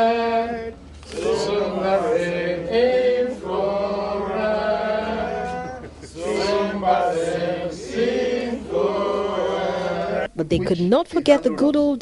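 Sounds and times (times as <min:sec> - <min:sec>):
men singing together: 0:00.0 - 0:10.3.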